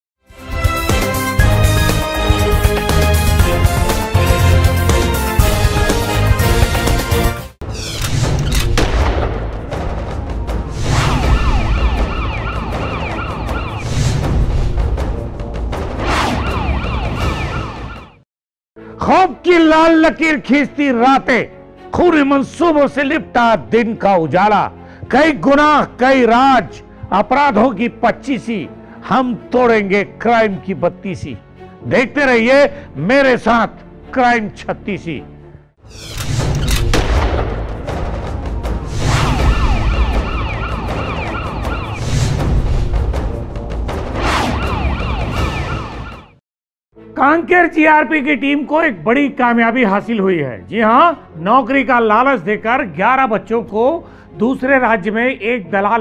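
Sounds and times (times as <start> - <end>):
siren yelping: 11.1 - 13.8, 16.3 - 18.2, 39.2 - 42.0, 44.4 - 46.4.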